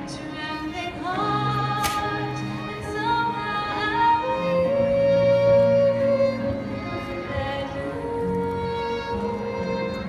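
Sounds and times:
woman singing: 0.0s - 9.9s
violin accompaniment: 0.0s - 10.0s
brief click: 1.8s - 2.1s.

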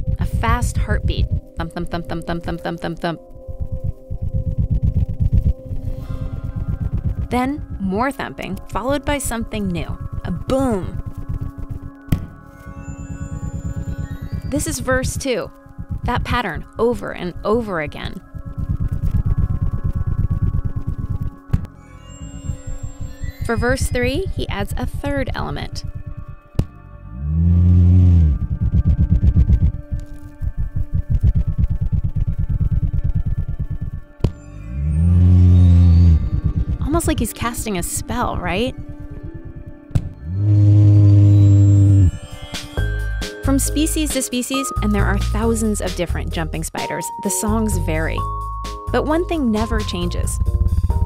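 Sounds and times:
spider vibration thumps: 0.0s - 42.2s, 49.4s - 51.0s
loud steady low buzz: 3.4s - 9.0s, 26.9s - 29.9s, 40.1s - 42.2s.

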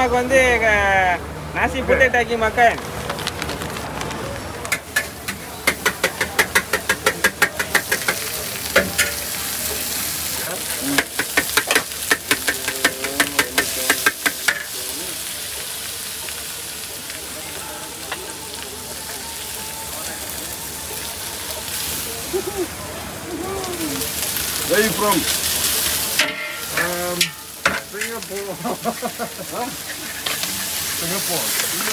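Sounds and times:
food sizzling: 2.1s - 31.9s
metal ladle clanking against wok: 8.8s - 9.3s, 26.2s - 28.2s.

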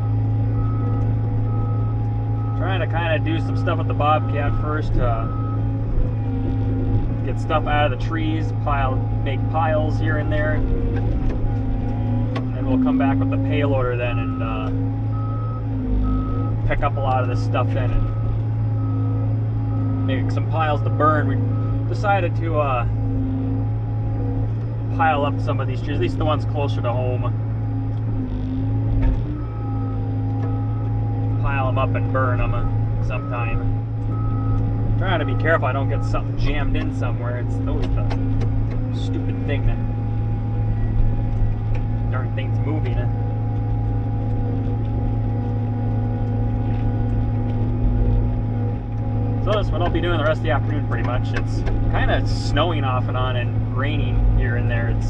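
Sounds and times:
diesel engine low drone: 0.0s - 55.0s
high steady whine: 0.0s - 55.0s.

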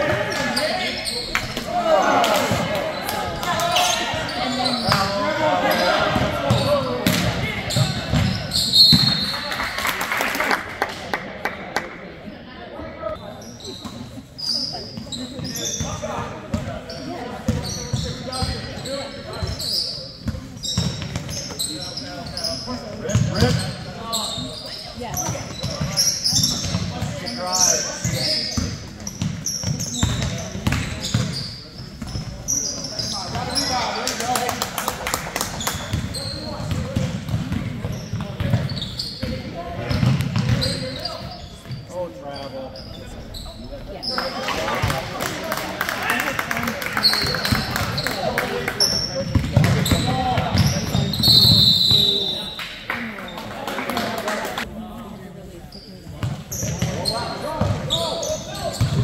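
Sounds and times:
sneakers squeaking: 0.0s - 9.7s, 13.0s - 34.4s, 35.4s - 45.4s, 46.1s - 54.1s, 55.4s - 59.0s.

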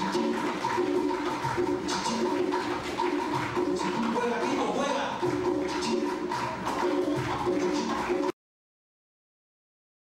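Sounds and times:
congas and timbales: 0.0s - 8.4s.

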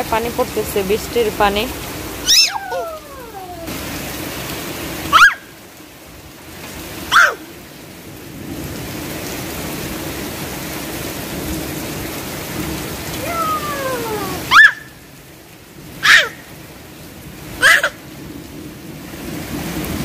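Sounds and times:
steady rain falling: 0.0s - 20.0s.

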